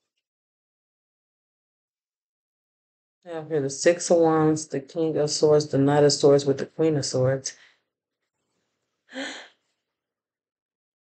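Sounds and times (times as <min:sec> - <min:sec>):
woman gasping: 0:09.1 - 0:09.6.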